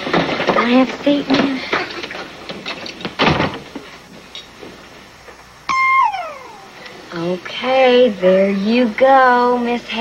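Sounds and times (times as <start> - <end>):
steady high tone: 5.7 - 7.2.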